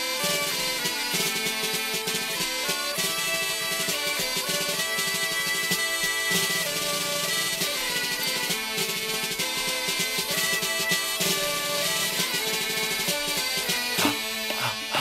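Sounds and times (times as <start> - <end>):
folk-rock band playing: 0.0 - 15.0.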